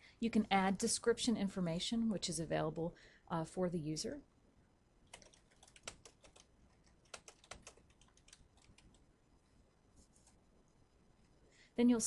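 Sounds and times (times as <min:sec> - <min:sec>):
computer keyboard typing: 0:05.1 - 0:09.0.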